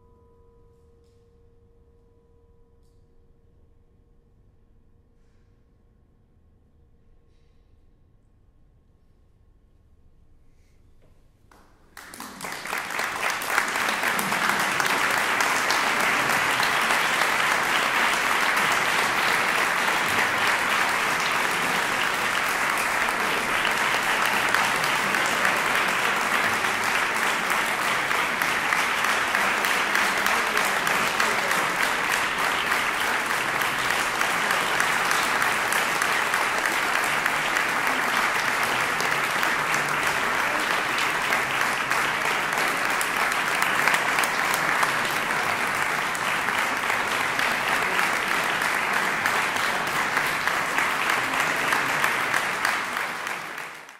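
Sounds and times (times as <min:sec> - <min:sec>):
audience applauding: 0:11.5 - 0:53.9.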